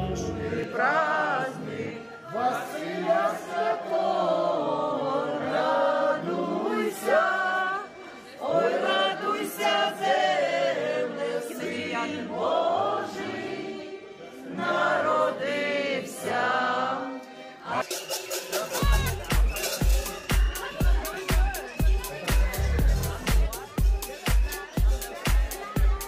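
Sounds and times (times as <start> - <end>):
group singing unaccompanied: 0.0 - 26.0
dance music with bass beat: 18.8 - 26.0.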